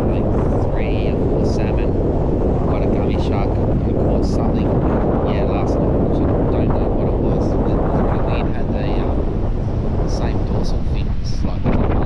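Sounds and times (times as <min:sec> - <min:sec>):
man's voice: 0:00.0 - 0:02.0, 0:02.6 - 0:09.2, 0:10.0 - 0:12.0
strong wind buffeting microphone: 0:00.0 - 0:12.0.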